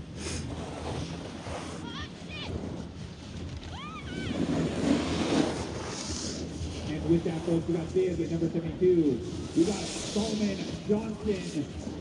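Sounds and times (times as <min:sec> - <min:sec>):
snowboards sliding over snow: 0:00.0 - 0:12.0.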